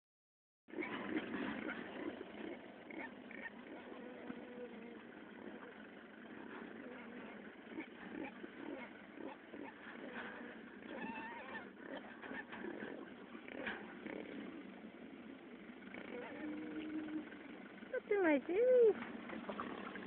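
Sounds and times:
pigs grunting and squealing: 0.7s - 14.9s, 15.9s - 17.4s.

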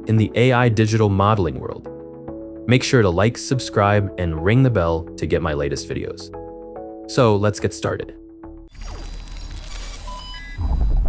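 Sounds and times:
digital beeps: 8.8s - 11.0s
deep bass rumble: 10.6s - 11.0s.

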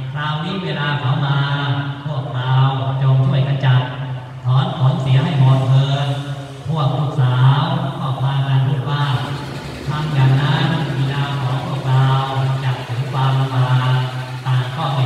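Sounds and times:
man chanting in monotone: 0.0s - 15.0s.

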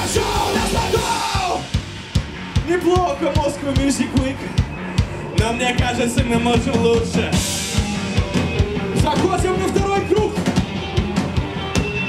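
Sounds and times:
punk rock band playing: 0.0s - 12.0s.

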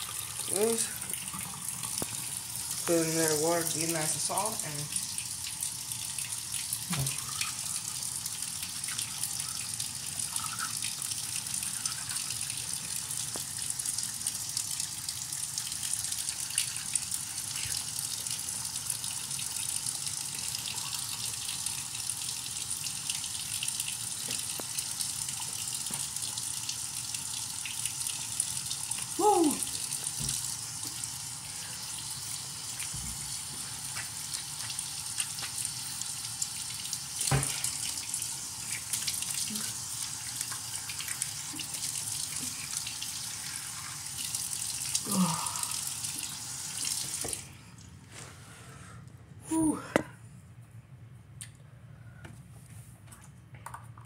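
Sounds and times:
faucet running into sink: 0.0s - 47.5s
brief vocal sound: 45.0s - 45.7s, 49.4s - 50.2s.

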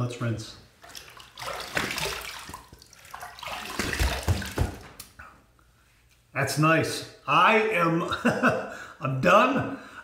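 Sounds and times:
water splashing at a sink: 0.8s - 5.1s
dull thumps: 3.7s - 5.0s.

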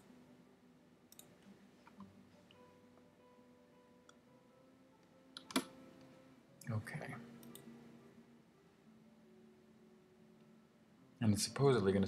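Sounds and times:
computer clicks: 1.1s - 1.3s, 5.4s - 5.7s.

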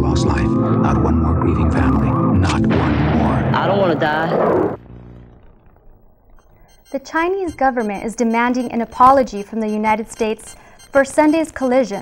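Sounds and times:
low tone: 4.8s - 12.0s
woman speaking: 6.9s - 12.0s.

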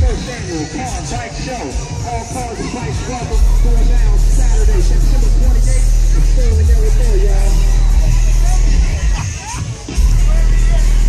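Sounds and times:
faint voices: 0.0s - 11.0s.

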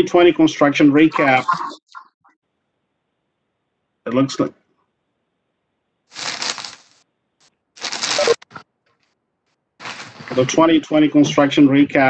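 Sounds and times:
crackling noise on call audio: 6.0s - 10.7s.

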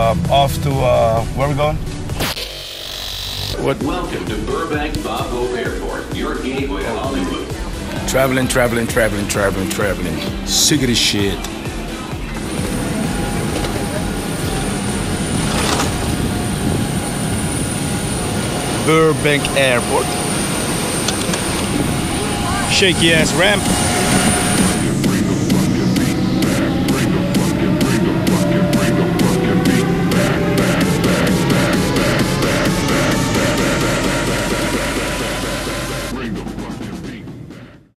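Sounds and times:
aircraft engines roaring: 0.0s - 2.2s, 3.6s - 37.6s
high thin whine: 11.3s - 36.3s.

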